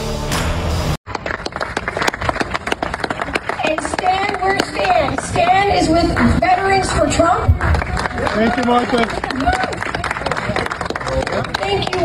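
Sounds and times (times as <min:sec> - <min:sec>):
crowd applauding: 0:01.1 - 0:12.0.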